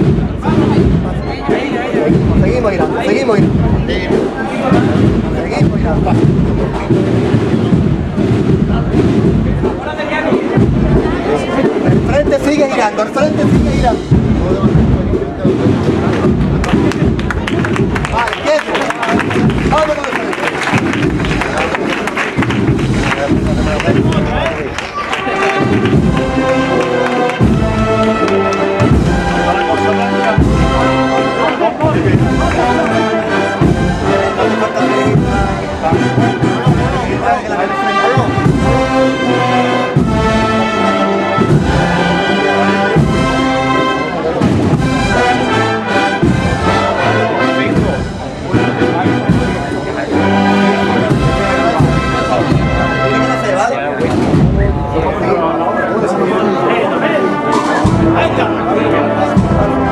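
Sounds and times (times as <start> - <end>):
steady drum beat: 0.0 - 55.3, 57.4 - 59.9
brass chords: 0.0 - 59.9.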